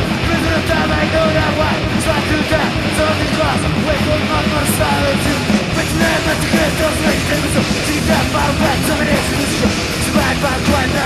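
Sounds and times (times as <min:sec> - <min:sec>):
distorted electric guitars: 0:00.0 - 0:11.0
fast drums: 0:00.0 - 0:11.0.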